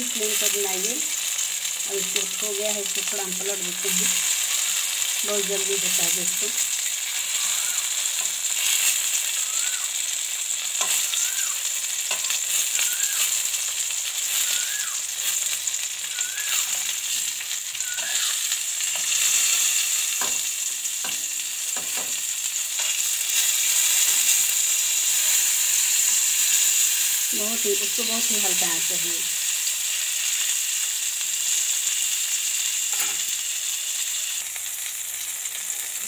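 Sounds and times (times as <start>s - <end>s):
tomatoes sizzling in oil: 0.0s - 36.0s.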